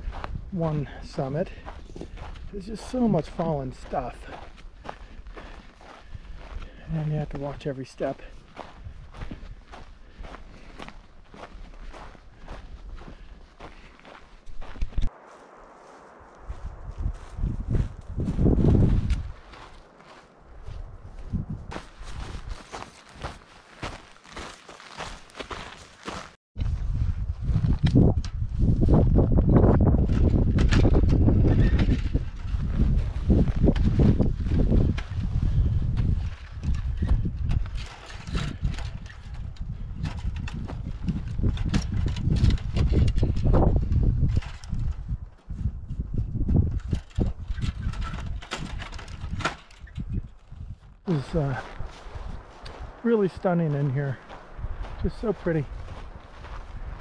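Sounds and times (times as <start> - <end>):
wind buffeting microphone: 0.0 - 7.6, 8.3 - 24.0, 26.6 - 57.0
footsteps on dry grass: 0.0 - 57.0
microphone handling noise: 14.0 - 19.8, 26.6 - 53.0.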